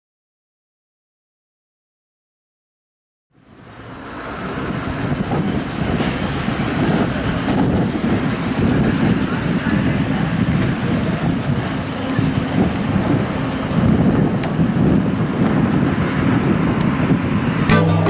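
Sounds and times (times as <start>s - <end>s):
traffic rumble: 3.4s - 18.0s.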